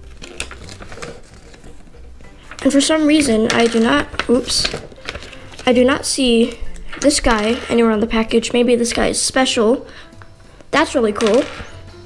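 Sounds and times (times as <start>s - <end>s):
paper rustling and crackling: 0.0s - 9.1s, 11.0s - 11.8s.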